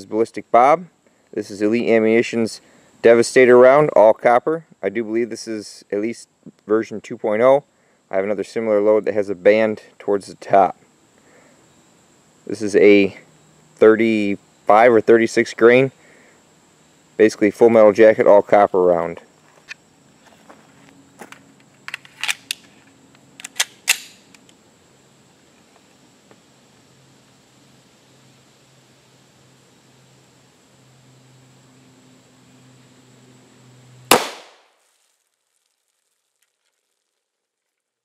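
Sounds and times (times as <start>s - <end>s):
gun handling clicks: 21.8s - 24.6s
pistol shot: 34.1s - 34.7s.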